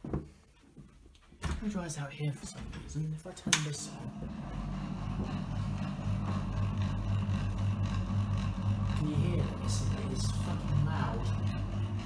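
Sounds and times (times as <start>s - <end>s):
extractor fan motor hum: 2.7s - 12.0s.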